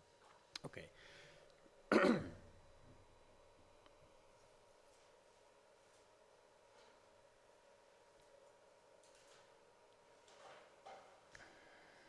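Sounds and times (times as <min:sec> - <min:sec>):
man clearing his throat: 0:01.9 - 0:02.5.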